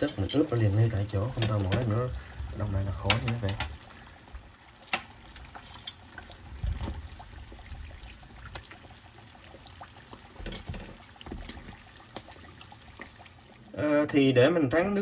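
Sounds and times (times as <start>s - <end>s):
oil sizzling: 0.0s - 14.0s
tongs knocking against pot: 1.4s - 1.9s.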